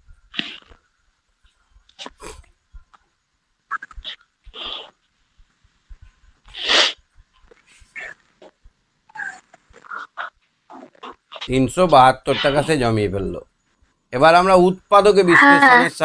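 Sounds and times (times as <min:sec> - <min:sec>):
man's breathy mouth noises: 0:00.0 - 0:03.0
man muttering: 0:11.4 - 0:12.9
man speaking: 0:11.5 - 0:13.4, 0:14.1 - 0:16.0.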